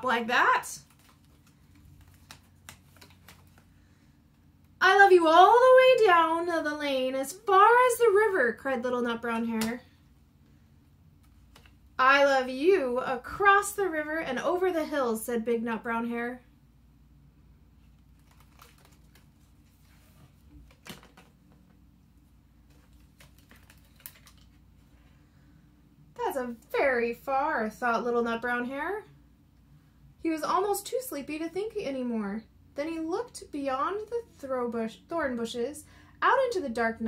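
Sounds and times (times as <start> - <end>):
paper page turning and crinkling: 0.8 - 3.7, 17.8 - 21.8, 22.6 - 25.1.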